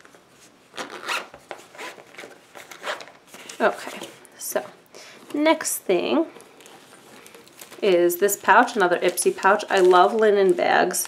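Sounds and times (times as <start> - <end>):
zipper being zipped closed: 0.8 - 3.9.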